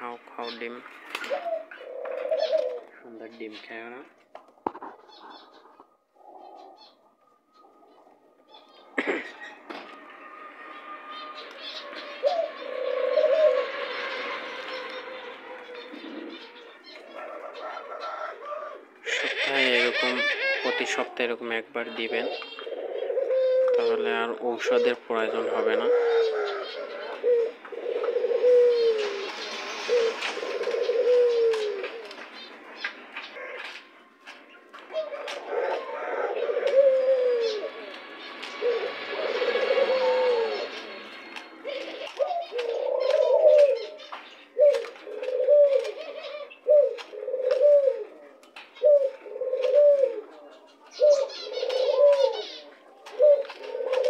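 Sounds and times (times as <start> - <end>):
doves cooing: 0.0 - 54.0.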